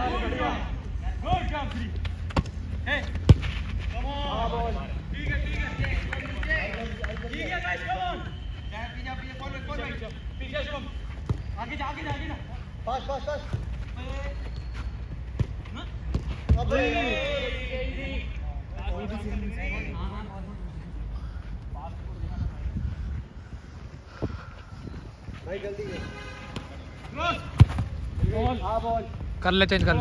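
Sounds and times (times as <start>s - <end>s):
players shouting: 0.0s - 1.9s, 15.8s - 18.3s
football kicked on turf: 3.2s - 3.6s, 27.6s - 28.0s.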